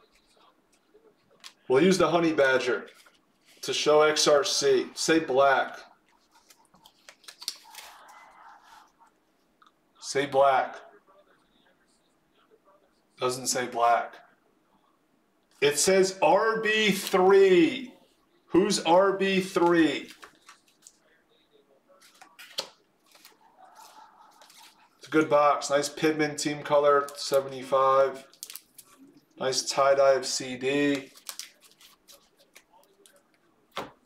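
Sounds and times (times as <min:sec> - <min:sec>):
trading cards in plastic sleeves rustling: 0:00.0 - 0:01.9, 0:02.8 - 0:04.6, 0:05.5 - 0:08.8, 0:16.8 - 0:17.8, 0:19.0 - 0:21.0, 0:22.0 - 0:34.0
cards clicking and tapping: 0:06.4 - 0:07.8.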